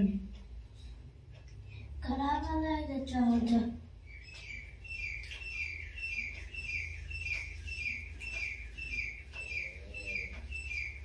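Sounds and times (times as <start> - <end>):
bird chirping: 4.0 - 11.0.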